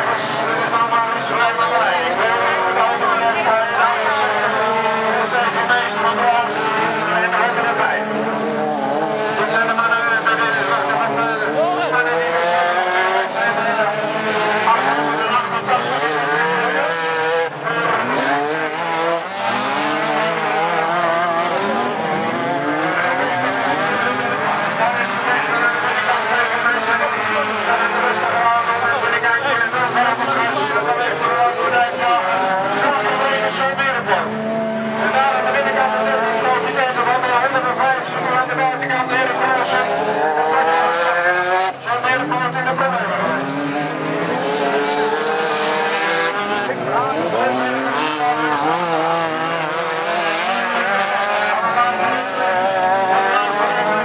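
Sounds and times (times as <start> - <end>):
car engines revving: 0.0 - 54.0
crowd voices: 0.0 - 54.0.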